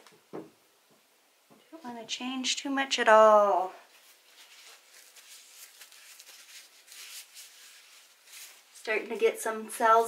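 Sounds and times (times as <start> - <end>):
faint rustling: 3.8 - 10.0.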